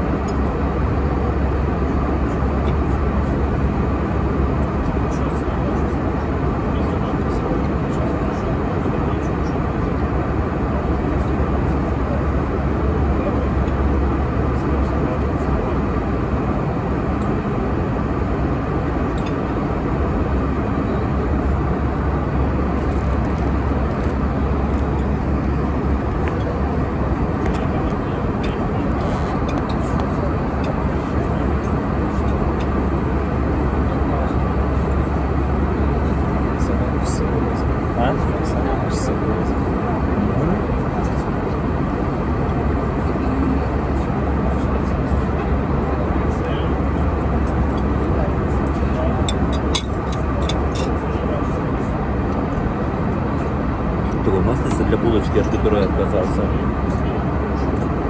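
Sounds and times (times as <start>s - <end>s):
airliner cabin noise: 0.0s - 58.0s.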